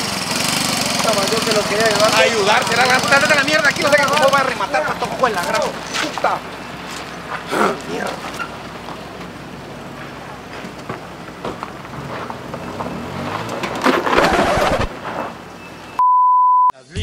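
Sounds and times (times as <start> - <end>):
car engine: 0.0 - 16.0
tyres crunching on gravel: 0.4 - 16.0
rush of noise: 14.0 - 15.4.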